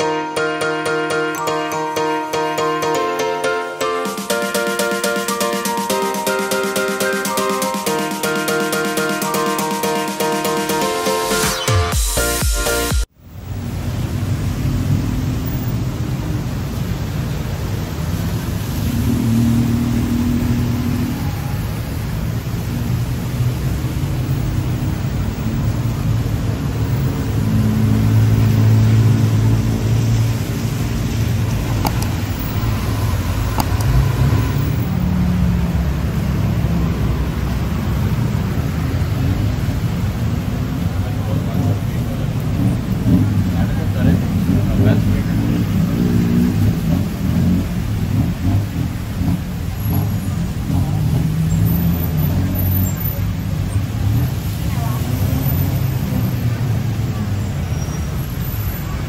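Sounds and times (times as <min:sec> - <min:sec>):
traffic on a wet road: 0:13.1 - 0:59.0.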